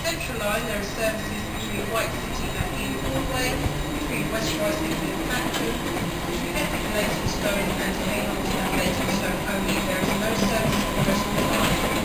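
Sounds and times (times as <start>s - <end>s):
train wheels running on rail: 0.0s - 12.0s.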